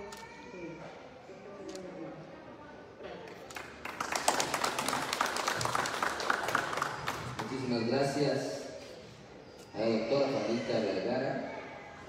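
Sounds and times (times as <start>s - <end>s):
small audience applauding: 3.3s - 7.9s.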